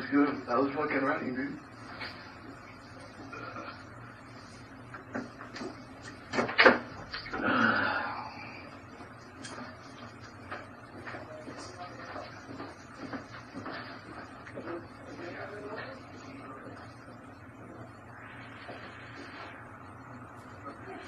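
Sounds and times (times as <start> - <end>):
rush of noise: 18.1 - 20.3.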